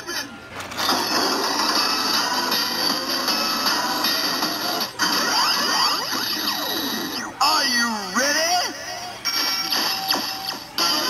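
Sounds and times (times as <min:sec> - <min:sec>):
toy belt electronic sound effects: 0:00.7 - 0:07.4.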